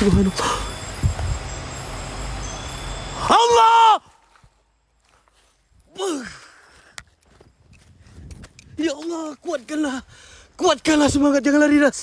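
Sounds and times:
man sighing: 5.9s - 6.9s.

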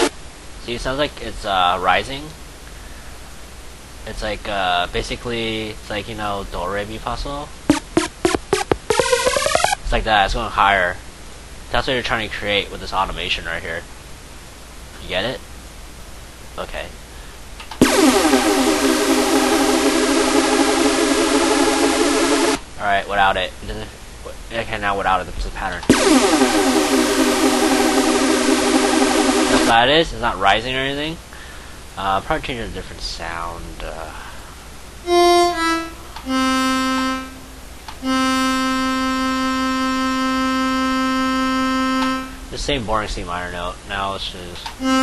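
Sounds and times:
synthesizer sustained chord: 7.7s - 9.8s, 17.8s - 22.6s, 25.9s - 29.7s, 36.3s - 42.5s.

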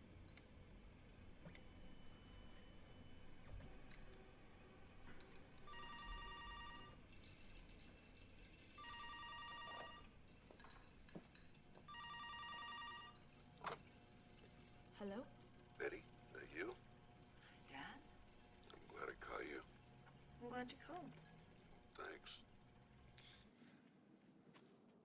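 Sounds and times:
electronic telephone ringer warbling: 5.7s - 7.0s, 8.8s - 10.1s, 11.9s - 13.2s.

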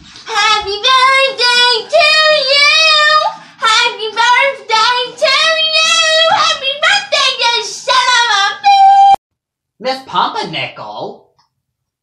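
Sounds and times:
high young voice singing: 0.3s - 9.2s.

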